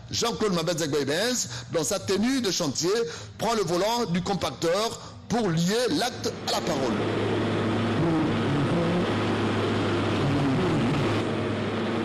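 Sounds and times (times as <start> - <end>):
road roller engine droning: 6.2 - 12.0.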